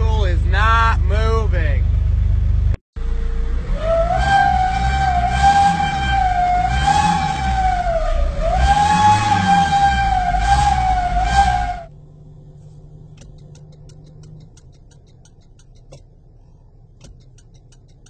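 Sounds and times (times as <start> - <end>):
car engine revving: 0.0 - 18.0.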